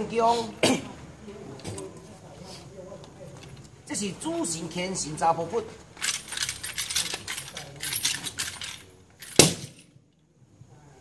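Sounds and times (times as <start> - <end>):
wooden chair clattering rattle: 6.0 - 9.8.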